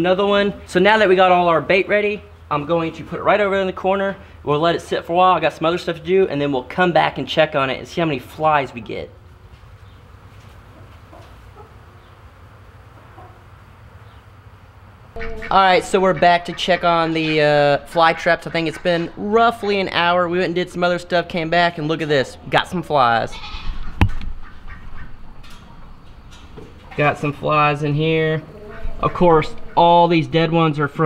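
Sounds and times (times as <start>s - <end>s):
poultry clucking: 9.8s - 14.4s, 15.2s - 20.8s, 23.0s - 30.8s
flies buzzing: 11.3s - 19.3s, 27.6s - 30.5s.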